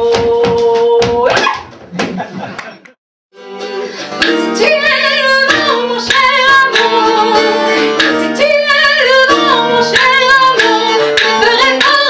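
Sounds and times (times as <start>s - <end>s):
woman singing with vibrato: 0.0s - 1.6s, 4.2s - 12.0s
acoustic guitar strumming: 3.3s - 12.0s.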